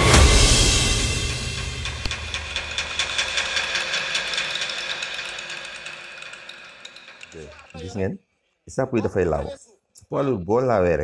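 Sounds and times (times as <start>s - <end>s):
rapid ticking: 1.6s - 8.0s.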